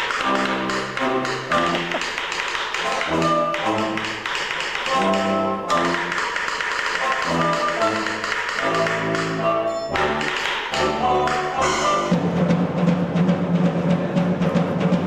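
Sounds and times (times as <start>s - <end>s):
brass band playing: 0.0s - 2.0s, 2.8s - 6.2s, 7.0s - 13.2s
percussion taps: 0.0s - 12.2s.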